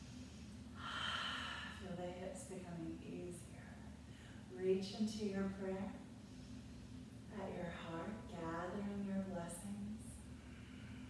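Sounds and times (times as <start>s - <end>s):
woman breathing: 0.0s - 1.9s, 4.0s - 4.5s, 10.3s - 11.0s.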